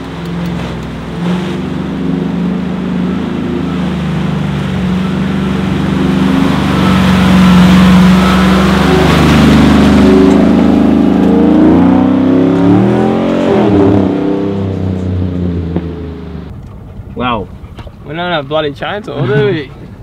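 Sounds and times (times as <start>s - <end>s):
water surging: 0.0s - 14.6s, 17.2s - 20.0s
vehicle engine revving: 0.0s - 16.5s.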